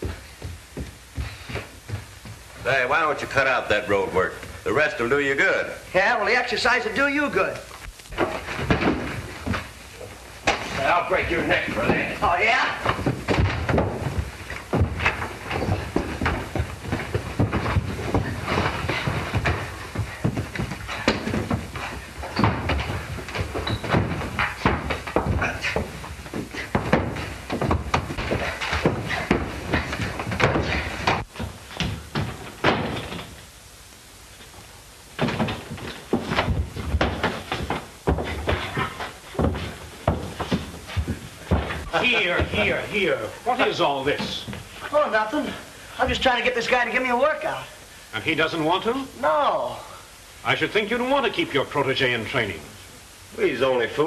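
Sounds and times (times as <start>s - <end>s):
running feet thumping: 0.0s - 4.8s, 6.8s - 45.6s
furniture being knocked about: 8.2s - 33.4s, 35.2s - 42.8s.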